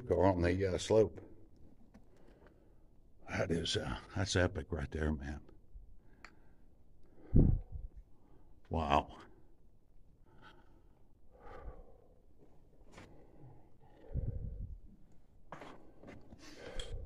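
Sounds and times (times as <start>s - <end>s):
breathing: 2.1s - 2.9s, 6.0s - 8.6s, 10.2s - 14.8s, 16.1s - 17.0s.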